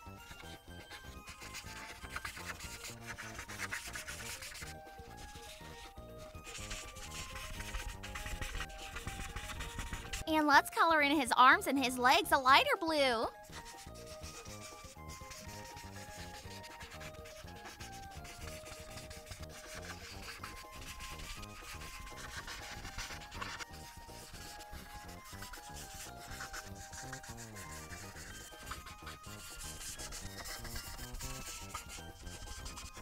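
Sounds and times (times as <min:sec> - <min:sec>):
marker scratching on paper: 0:00.1 - 0:33.0.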